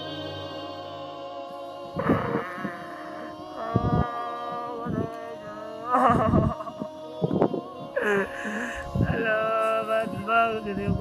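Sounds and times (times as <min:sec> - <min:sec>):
a cappella voices singing: 0:00.0 - 0:11.0.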